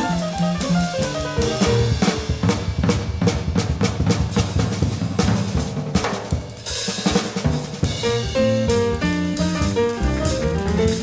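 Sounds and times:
acoustic piano: 0.0s - 2.7s, 7.8s - 11.0s
double bass: 0.0s - 5.6s, 7.8s - 11.0s
drum kit: 0.0s - 11.0s.

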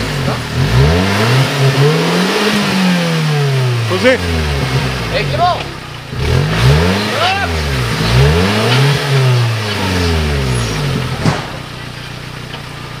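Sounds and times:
engine revving in mud: 0.0s - 11.8s
sharp knock: 11.1s - 11.8s.

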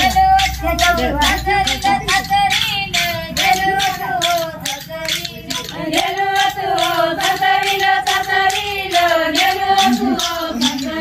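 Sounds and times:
women singing in unison: 0.0s - 11.0s.

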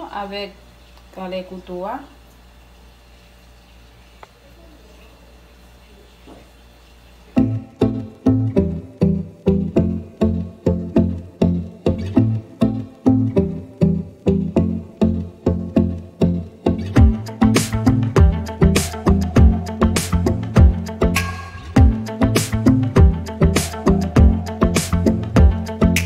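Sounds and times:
plucked bass line music: 7.4s - 26.0s.

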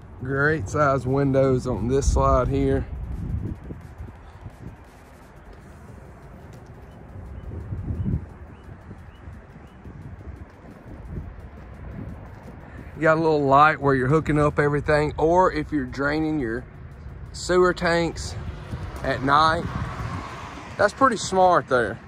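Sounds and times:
wind rumbling on microphone: 0.0s - 22.0s
small bird chirping: 6.5s - 10.3s.

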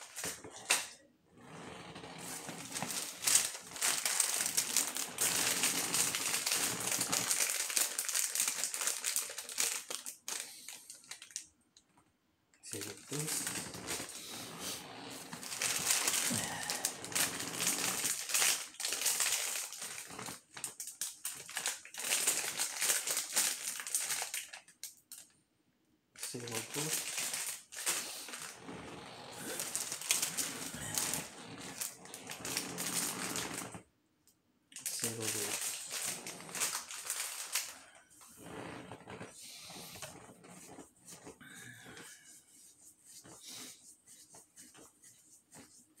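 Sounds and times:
plastic packaging crinkling: 1.8s - 11.5s, 12.7s - 14.2s, 15.0s - 25.3s, 26.2s - 33.8s, 34.8s - 39.2s.

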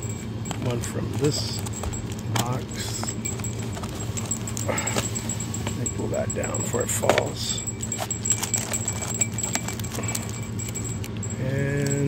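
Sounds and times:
low store hum: 0.0s - 12.0s.

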